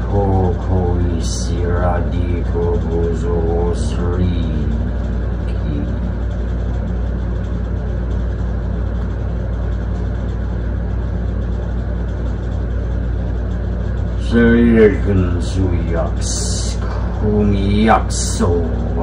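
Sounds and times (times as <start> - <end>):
man chanting: 0.0 - 6.4, 14.2 - 19.0
deep droning rumble: 0.0 - 19.0
faint hum: 0.0 - 19.0.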